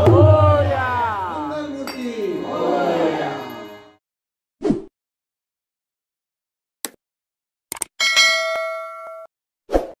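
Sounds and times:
notification bell ding: 8.0s - 9.3s.

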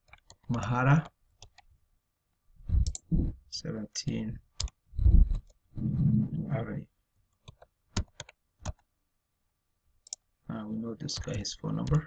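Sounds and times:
computer keyboard key clicks: 7.4s - 8.8s.

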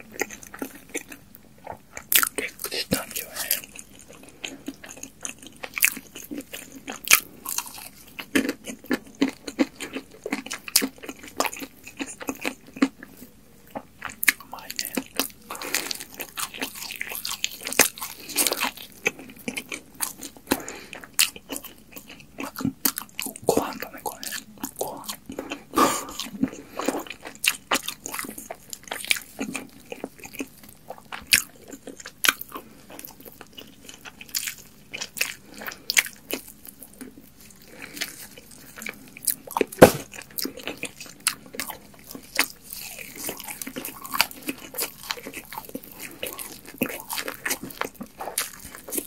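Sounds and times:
crunchy chewing: 0.0s - 49.0s.

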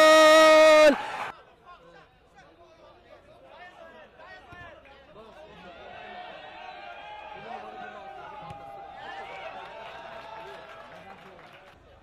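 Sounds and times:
commentator long held shout: 0.0s - 1.2s.

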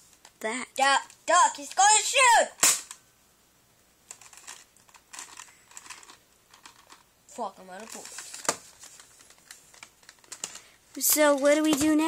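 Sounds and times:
plastic toy clicks and rustling: 4.1s - 7.0s, 7.7s - 12.0s.

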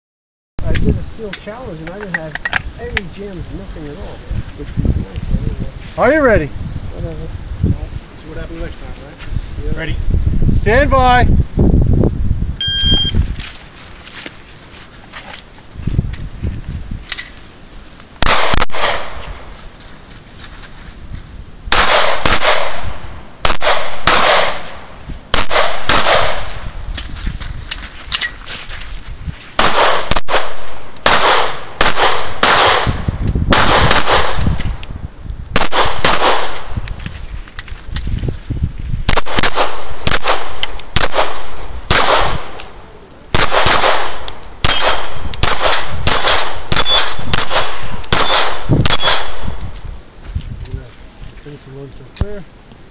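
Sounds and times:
handgun shots: 18.2s - 19.2s, 23.4s - 24.7s, 25.3s - 26.5s, 39.1s - 42.6s, 43.4s - 49.4s.

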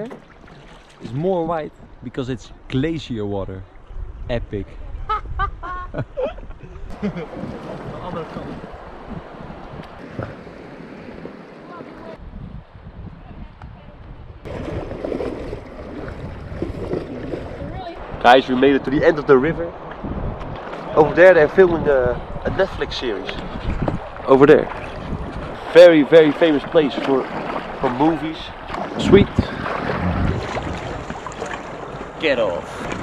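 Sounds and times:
river water: 0.0s - 5.0s, 6.8s - 12.3s, 14.4s - 33.0s
wind on microphone: 3.6s - 33.0s.

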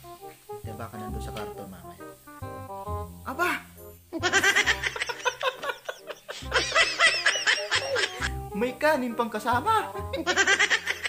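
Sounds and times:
man laughing hard: 4.2s - 8.4s, 9.9s - 11.0s.

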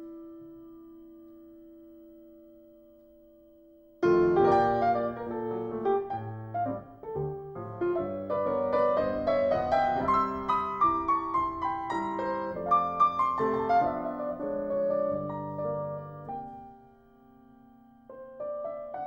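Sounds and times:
solo piano music: 0.0s - 19.0s.

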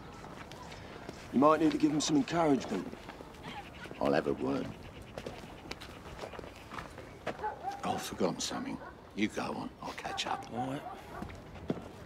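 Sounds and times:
footsteps on paving: 0.0s - 3.5s, 5.1s - 7.6s.

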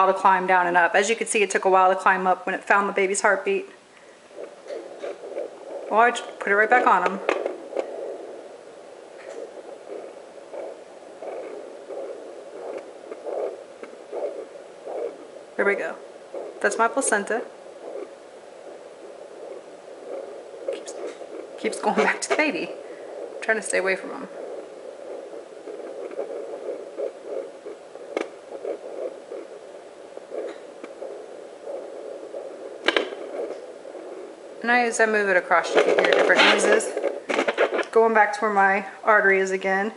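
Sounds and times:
whooshing heartbeat pulses: 0.0s - 38.3s
steady hiss: 0.0s - 39.9s.

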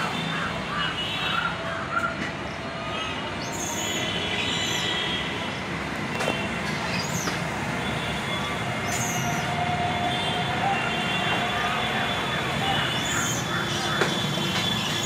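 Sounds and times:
outdoor background noise: 0.0s - 15.0s.

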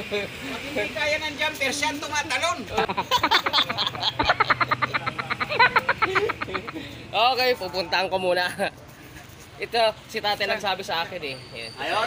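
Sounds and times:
man laughing heartily: 2.8s - 7.0s.

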